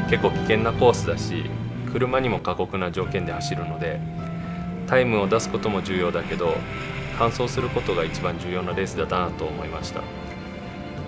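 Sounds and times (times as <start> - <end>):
man speaking: 0.0 - 4.0, 4.9 - 6.6, 7.2 - 10.1
race car engine running: 0.0 - 9.0.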